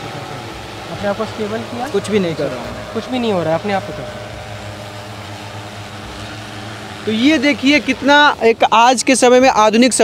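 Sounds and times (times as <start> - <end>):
drone propellers humming: 0.0 - 10.0.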